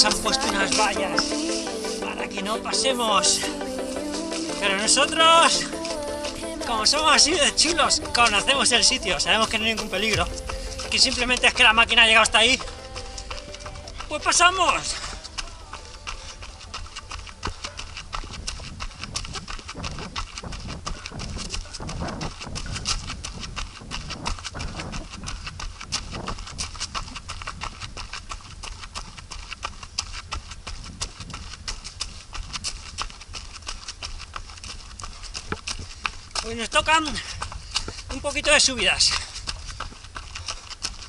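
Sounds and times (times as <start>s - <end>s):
footsteps on dirt and dry leaves: 0.0s - 41.0s.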